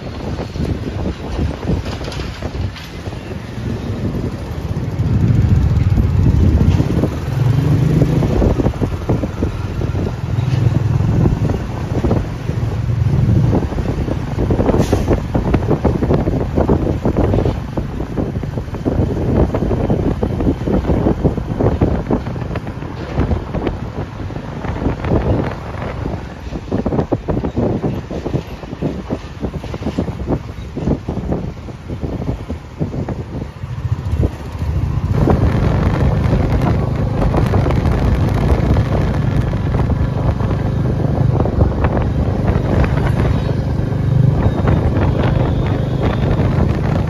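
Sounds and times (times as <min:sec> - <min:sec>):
motorcycle engine rumble: 0:00.0 - 0:47.0
wind buffeting microphone: 0:00.0 - 0:47.0.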